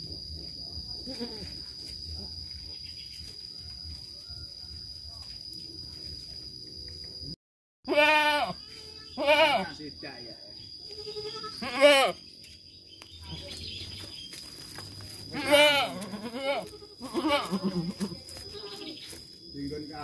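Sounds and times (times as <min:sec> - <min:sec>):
goats bleating: 0:07.9 - 0:09.7, 0:10.9 - 0:12.2, 0:15.3 - 0:19.0.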